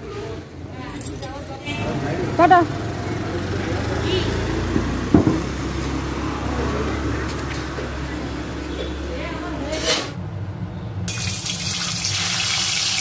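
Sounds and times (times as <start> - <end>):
motor scooter engine passing: 1.7 - 9.8
sharp knock: 5.1 - 5.5.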